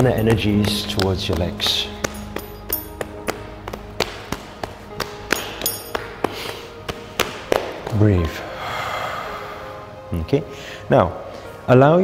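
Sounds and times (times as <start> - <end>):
hands slapping thighs and shins: 0.0 - 8.0
soft background music: 0.0 - 12.0.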